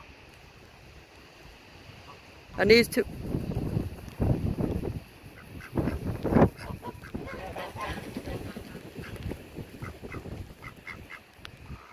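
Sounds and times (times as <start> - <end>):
ducks quacking: 5.3 - 11.9.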